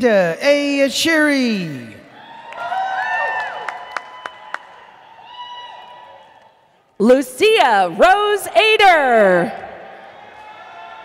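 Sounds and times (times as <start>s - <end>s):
audience cheering and whooping: 2.1s - 6.7s, 9.7s - 11.0s.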